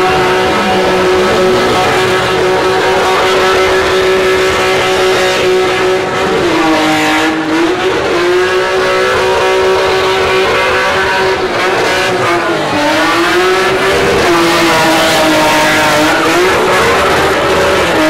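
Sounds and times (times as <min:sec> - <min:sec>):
car engine at high revs: 0:00.0 - 0:18.0.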